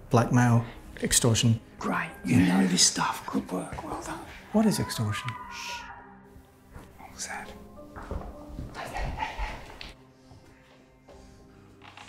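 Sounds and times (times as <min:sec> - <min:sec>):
soft film underscore: 0:00.0 - 0:12.0.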